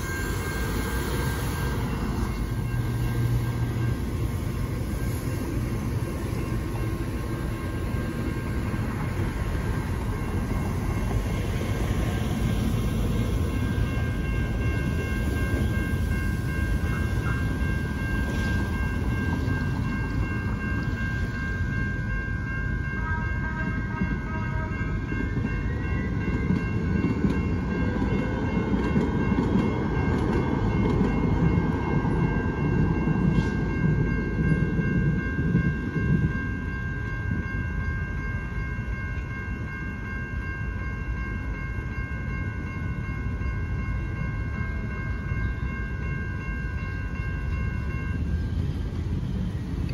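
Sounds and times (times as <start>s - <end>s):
railroad crossing bells ringing: 0.0s - 49.9s
trolley horn blasts: 22.9s - 25.1s.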